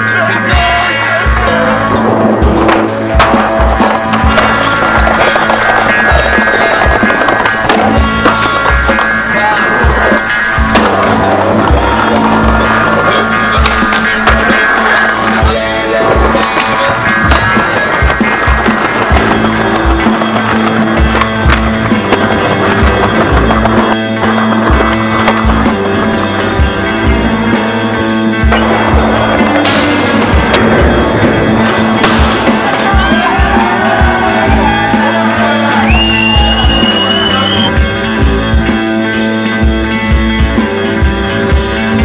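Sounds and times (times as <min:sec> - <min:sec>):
music with bass beat: 0:00.0 - 0:42.0
skateboard wheels rolling on pavement: 0:00.6 - 0:42.0
skateboard clacks: 0:01.3 - 0:37.7.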